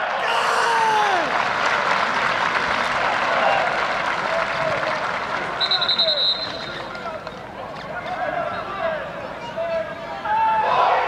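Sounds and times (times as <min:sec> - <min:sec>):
fans shouting: 0:00.0 - 0:01.7
crowd clapping: 0:00.0 - 0:08.2.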